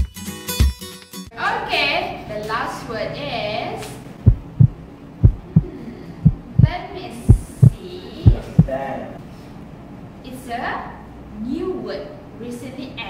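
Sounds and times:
heartbeat thumps: 4.2 - 8.8.

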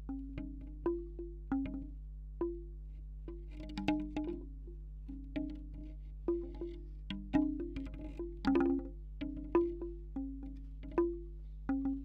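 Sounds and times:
bamboo wind chime clacking: 5.4 - 12.0.

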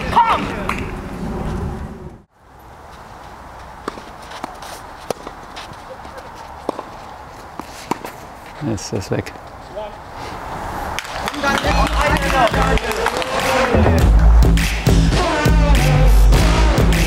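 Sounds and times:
open-air ambience: 0.0 - 17.0
racquet hitting tennis ball: 3.8 - 5.8, 6.6 - 8.2
man's voice: 11.4 - 14.2, 14.9 - 17.0.

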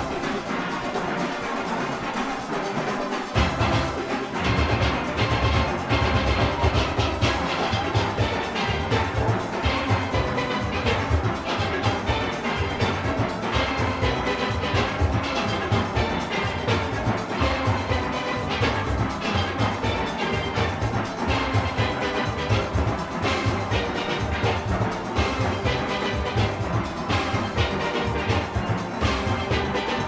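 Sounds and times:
steel orchestra playing: 0.0 - 30.0
steady bass beat: 3.4 - 30.0.

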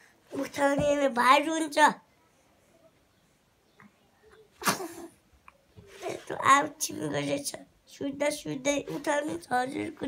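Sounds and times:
person sneezing: 4.6 - 5.1.

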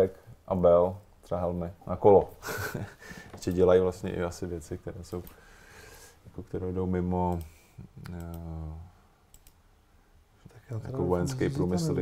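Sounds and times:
computer mouse clicks: 7.3 - 8.5, 9.3 - 9.6.

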